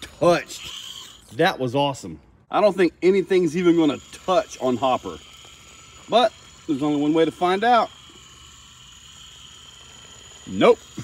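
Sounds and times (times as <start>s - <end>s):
high-pitched electric motor whine: 0.0s - 1.4s, 2.6s - 11.0s.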